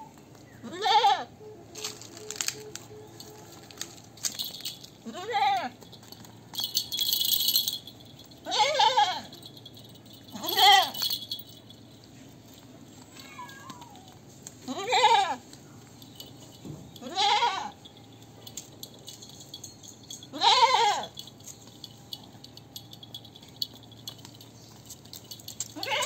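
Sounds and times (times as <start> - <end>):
goat bleating: 0.6 - 1.3, 5.0 - 5.8, 8.5 - 9.3, 14.7 - 15.4, 17.0 - 17.8, 20.3 - 21.1, 25.8 - 26.0.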